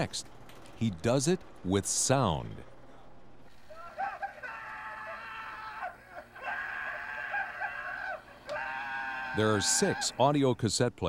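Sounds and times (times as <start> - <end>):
high-pitched screaming cries: 3.7 - 10.2.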